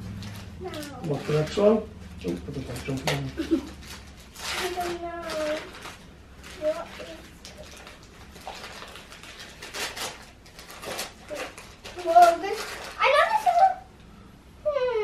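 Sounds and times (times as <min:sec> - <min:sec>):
wrapping crinkling and tearing: 0:00.0 - 0:13.9
high voice: 0:11.3 - 0:13.9, 0:14.6 - 0:15.0.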